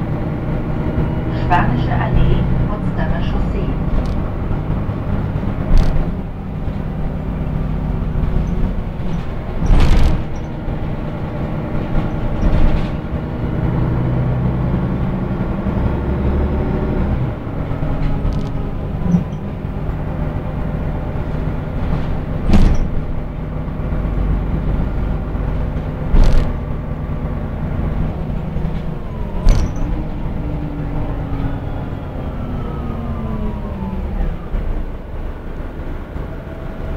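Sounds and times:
bus engine and drivetrain hum: 0:00.0 - 0:36.9
bus body knocks and rattles: 0:03.8 - 0:13.8, 0:21.0 - 0:23.8, 0:24.9 - 0:27.1, 0:27.7 - 0:30.3.

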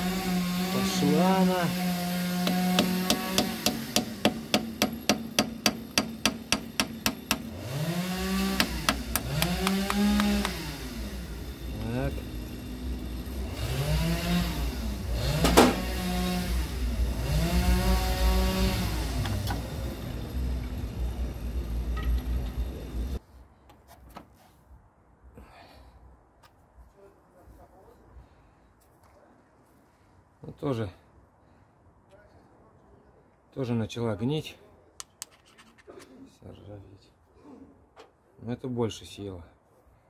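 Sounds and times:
hammer striking chisel on metal: 0:02.4 - 0:07.5, 0:08.6 - 0:10.6.

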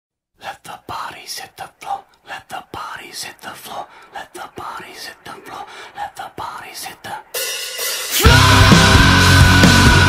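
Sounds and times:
person whispering: 0:00.4 - 0:07.4.

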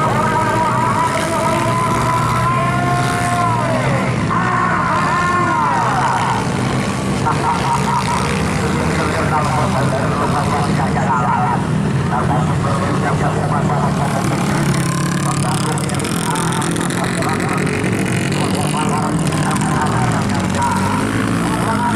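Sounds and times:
low engine drone: 0:00.0 - 0:21.9
motocross bike engines revving: 0:00.0 - 0:21.9.

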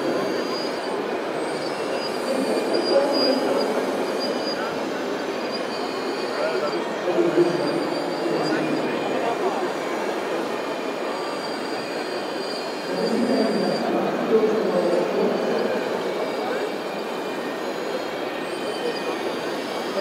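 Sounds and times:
crowd chatter: 0:00.0 - 0:20.0
electric whine of model excavators: 0:00.0 - 0:20.0.

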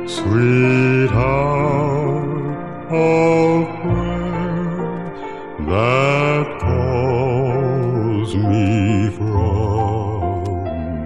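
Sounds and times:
sustained low accompaniment: 0:00.0 - 0:11.0.

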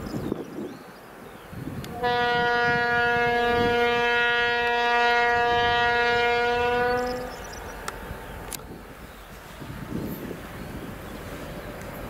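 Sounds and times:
low noise of approaching train: 0:00.0 - 0:12.0
locomotive horn long note: 0:01.9 - 0:07.4.

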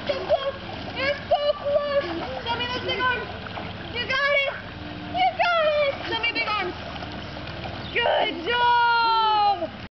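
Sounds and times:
high-pitched voices calling out: 0:00.0 - 0:06.8, 0:07.8 - 0:09.8
water splashing in a pool: 0:00.0 - 0:09.9.

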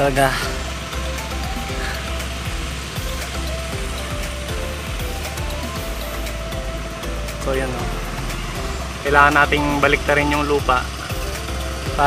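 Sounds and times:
background music with steady beat: 0:00.0 - 0:12.0
low rumble: 0:00.0 - 0:12.0.

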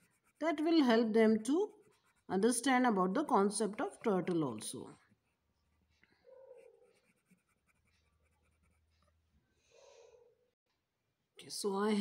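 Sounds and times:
colored pencil scratching on paper: 0:00.0 - 0:02.8, 0:06.5 - 0:09.1.

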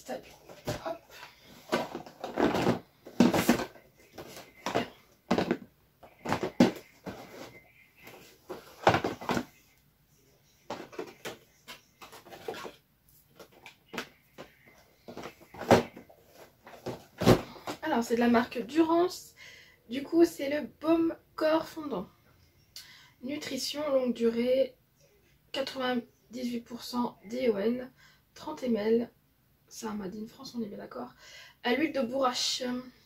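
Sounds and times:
cardboard knocking and rustling: 0:01.6 - 0:09.5, 0:13.4 - 0:17.8.

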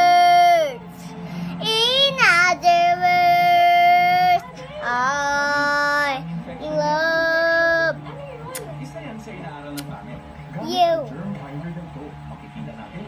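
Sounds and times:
girl singing: 0:00.0 - 0:00.8, 0:01.6 - 0:08.0.

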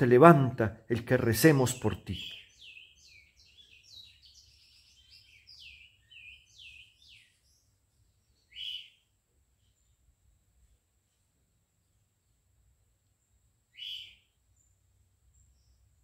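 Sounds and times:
small bird chirping: 0:01.7 - 0:12.4, 0:13.1 - 0:16.0.

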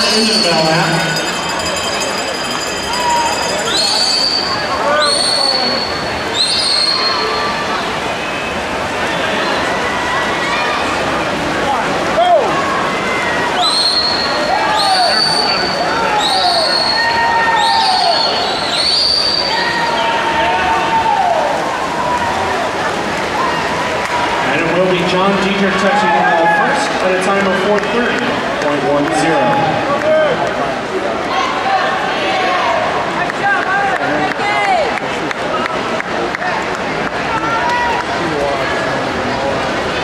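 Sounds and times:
spectators cheering and shouting: 0:00.0 - 0:40.0.

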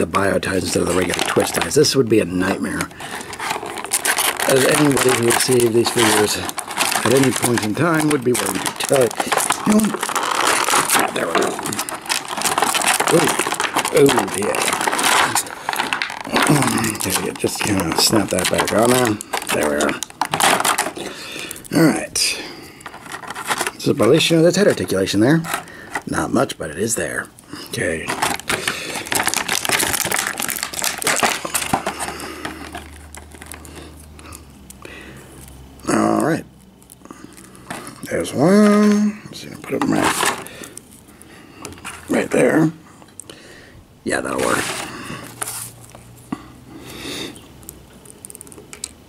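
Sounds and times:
plastic packaging crinkling: 0:00.0 - 0:43.3, 0:44.1 - 0:49.0.

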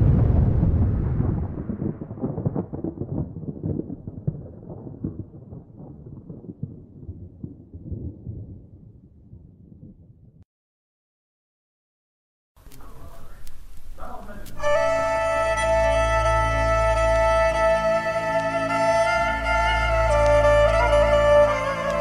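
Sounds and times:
scattered crackles: 0:00.0 - 0:10.1, 0:12.6 - 0:15.8, 0:16.5 - 0:22.0
deep rumbling boom: 0:00.0 - 0:10.4.

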